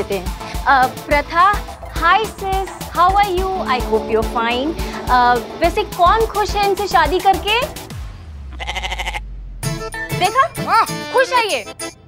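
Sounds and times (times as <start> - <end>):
pitched musical phrase: 1.8 - 8.0
low held bass note: 1.8 - 8.2.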